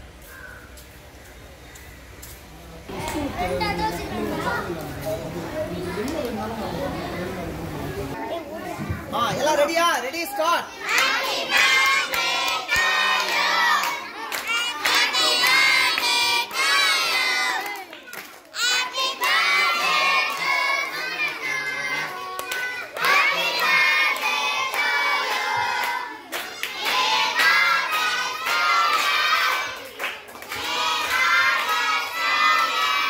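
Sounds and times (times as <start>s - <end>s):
children shouting and cheering: 10.3s - 33.0s.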